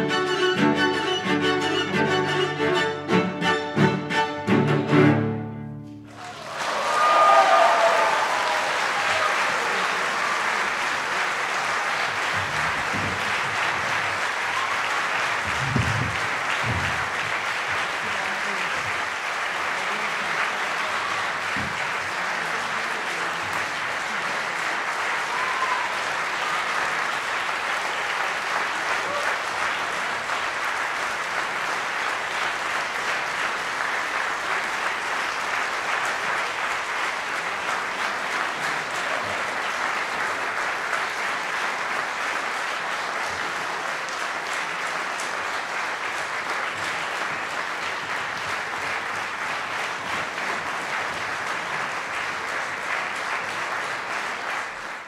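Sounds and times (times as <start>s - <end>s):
audience applauding: 6.0s - 55.0s.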